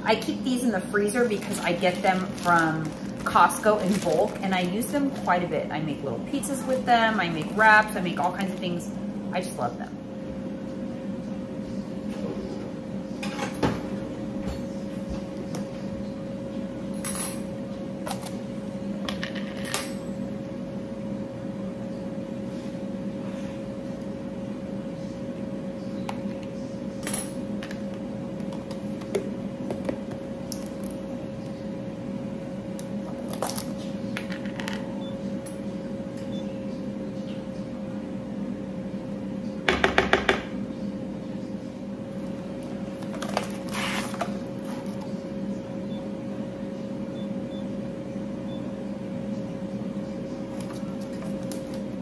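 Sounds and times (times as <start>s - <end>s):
appliance hum: 0.0s - 52.0s.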